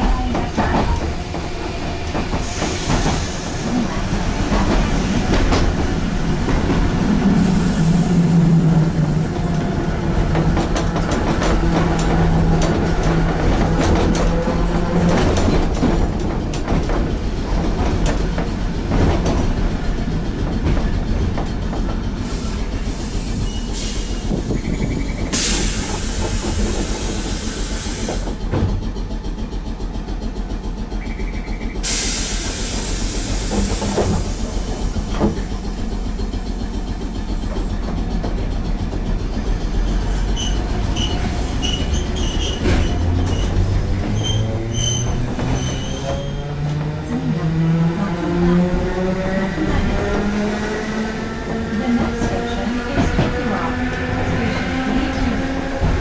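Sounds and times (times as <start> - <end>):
tram wheels rumbling on rail: 0.0 - 56.0
hiss: 2.4 - 3.9, 22.2 - 24.4, 25.3 - 28.4, 31.8 - 35.1.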